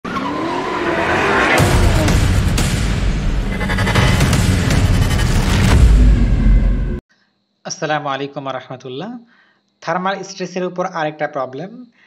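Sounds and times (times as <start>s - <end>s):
car tyres squealing: 0.0s - 2.2s
deep boom: 1.6s - 7.0s.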